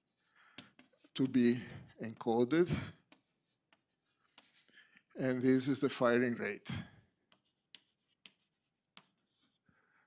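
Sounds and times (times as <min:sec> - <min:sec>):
chalk writing on blackboard: 0:00.0 - 0:01.3, 0:02.0 - 0:05.1, 0:07.0 - 0:10.0.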